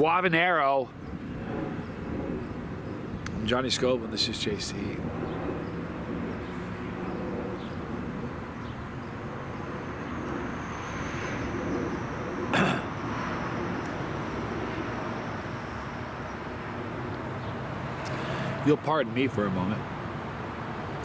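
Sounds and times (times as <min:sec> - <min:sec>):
distant traffic hum: 0:00.0 - 0:21.0.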